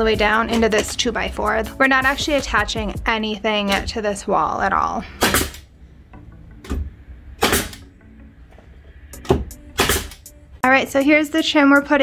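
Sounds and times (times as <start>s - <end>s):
nail gun firing: 5.2s - 5.6s, 7.4s - 7.8s, 9.3s - 10.3s.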